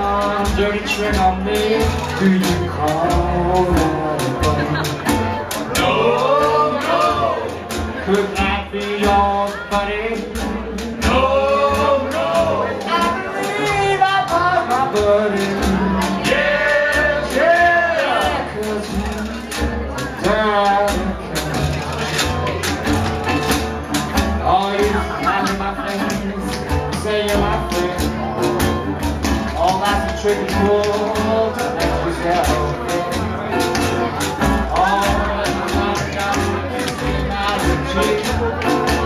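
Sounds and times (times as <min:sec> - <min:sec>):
men singing: 0:00.0 - 0:22.2, 0:24.4 - 0:28.9, 0:29.5 - 0:39.0
low bass line: 0:00.0 - 0:39.0
plucked strings: 0:00.0 - 0:39.0
strummed guitar: 0:00.0 - 0:39.0
washboard beat: 0:00.0 - 0:39.0.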